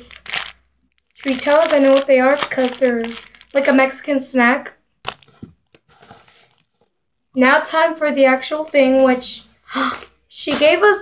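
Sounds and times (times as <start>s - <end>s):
paper packaging rustling: 0.0s - 3.9s, 5.0s - 6.9s.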